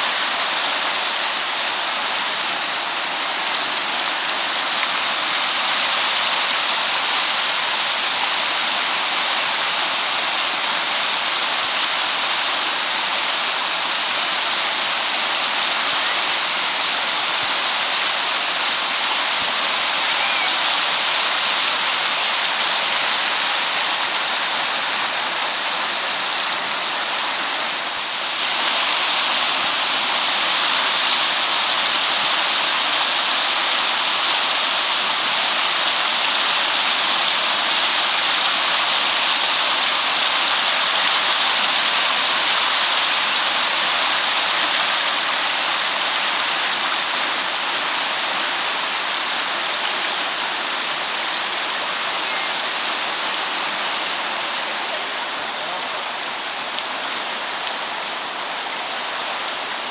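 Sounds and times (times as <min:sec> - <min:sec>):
river rapids rushing over rocks: 0:00.0 - 0:59.9.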